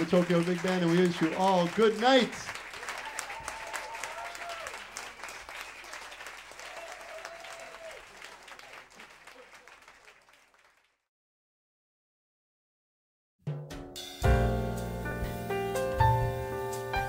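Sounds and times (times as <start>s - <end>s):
audience applauding: 0.0s - 11.1s.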